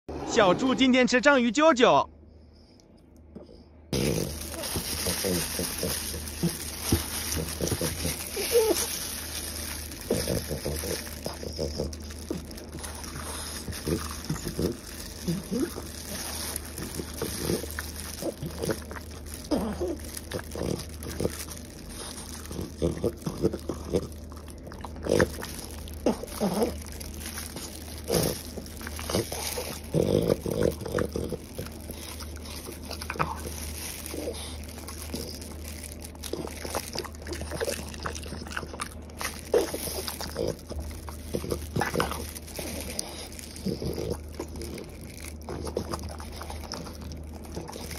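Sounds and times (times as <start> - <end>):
dog chewing and gnawing: 3.9 - 47.9.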